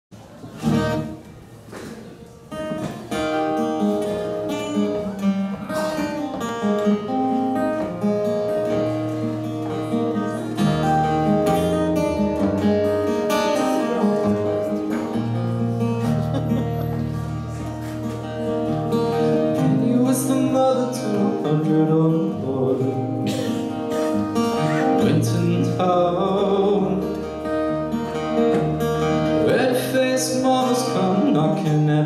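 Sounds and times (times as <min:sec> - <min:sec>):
acoustic guitar playing: 0:00.2 - 0:32.0.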